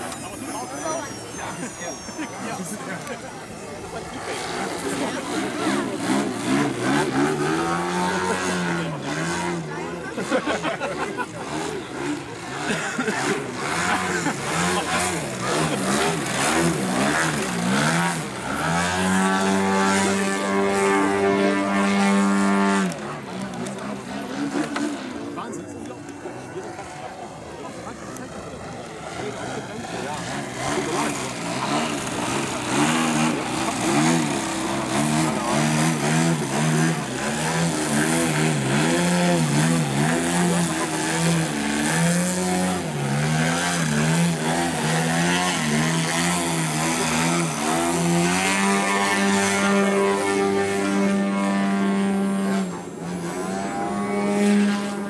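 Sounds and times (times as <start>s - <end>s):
model plane engine and propeller: 0.0s - 55.0s.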